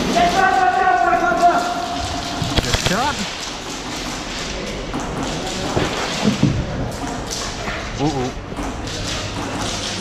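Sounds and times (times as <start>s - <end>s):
steady background din: 2.1s - 4.3s.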